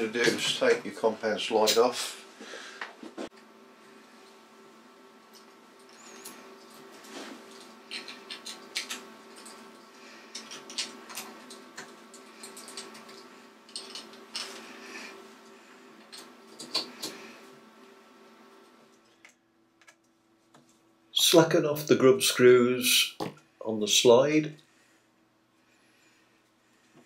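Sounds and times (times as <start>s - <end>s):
faint steady hum: 0.0s - 27.0s.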